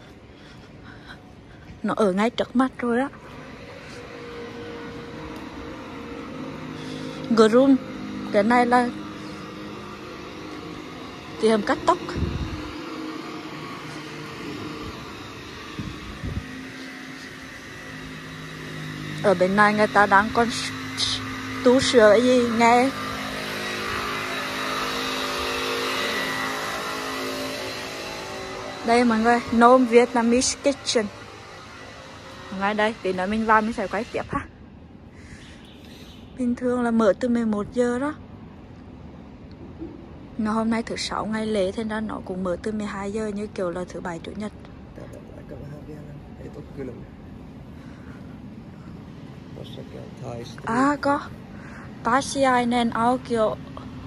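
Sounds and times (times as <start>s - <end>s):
steady mechanical hum: 0.0s - 54.0s
street noise: 0.0s - 54.0s.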